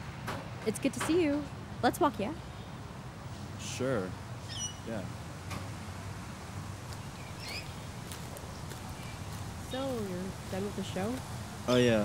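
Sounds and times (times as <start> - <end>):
bird chirp: 4.4 - 4.9, 7.0 - 9.8.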